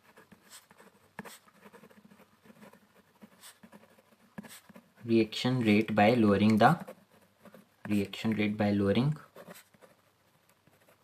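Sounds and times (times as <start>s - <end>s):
pen scratching on paper: 0.0s - 8.5s, 9.1s - 11.0s.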